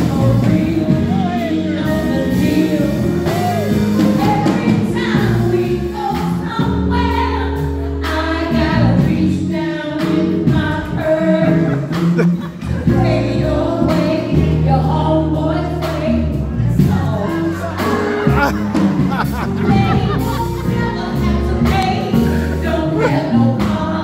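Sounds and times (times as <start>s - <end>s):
woman singing into a microphone: 0.0s - 12.2s, 12.8s - 18.2s, 19.6s - 24.0s
amplified backing music: 0.0s - 24.0s.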